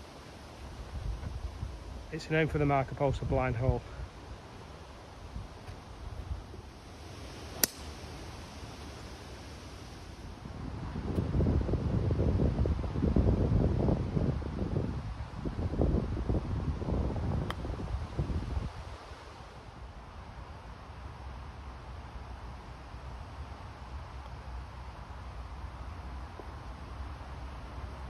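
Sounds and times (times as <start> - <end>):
wind buffeting microphone: 0.6 - 4.2, 10.4 - 19.8
golf club striking ball: 7.6 - 8.0.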